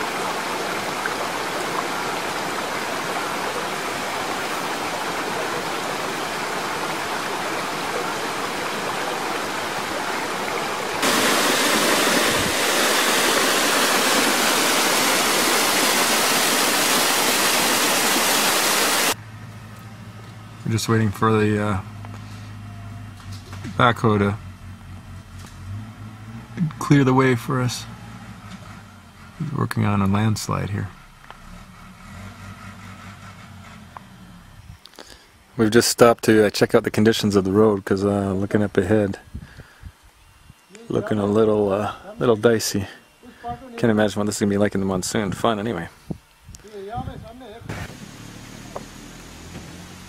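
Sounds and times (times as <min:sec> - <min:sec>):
waterfall rushing over rocks: 0:00.0 - 0:19.2.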